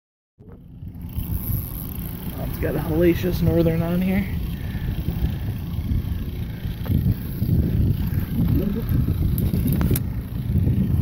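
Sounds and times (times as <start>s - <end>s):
low rumbling noise: 0.4s - 11.0s.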